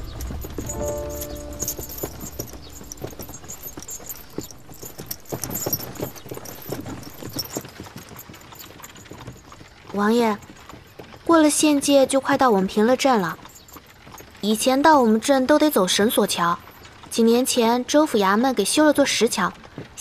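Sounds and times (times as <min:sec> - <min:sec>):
music cue: 0:00.0 - 0:03.2
hooves clopping on gravel: 0:00.0 - 0:20.0.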